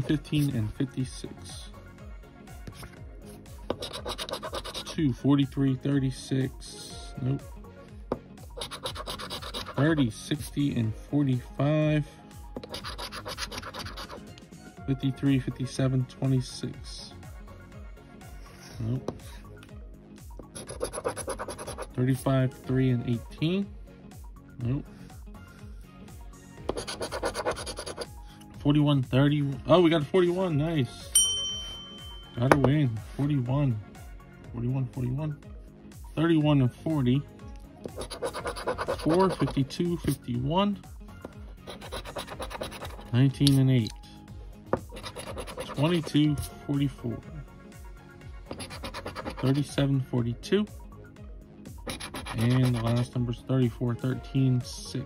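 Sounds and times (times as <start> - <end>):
scratcher scraping lottery ticket: 12.7 - 14.2, 38.0 - 39.5, 41.7 - 43.1, 48.5 - 49.6, 51.9 - 53.0.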